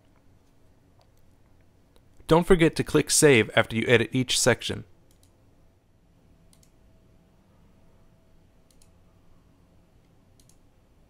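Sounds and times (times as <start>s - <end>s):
computer mouse clicks: 5.0s - 5.4s, 6.5s - 6.8s, 8.6s - 9.0s, 10.0s - 10.7s.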